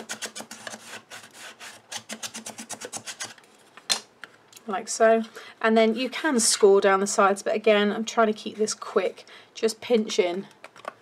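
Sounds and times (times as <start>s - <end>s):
ruler scraping cardstock: 0.0s - 3.4s.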